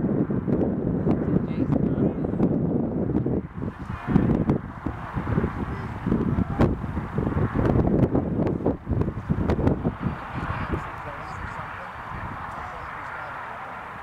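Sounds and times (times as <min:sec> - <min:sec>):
wind buffeting microphone: 0:00.0 - 0:14.0
people shouting: 0:03.8 - 0:07.0.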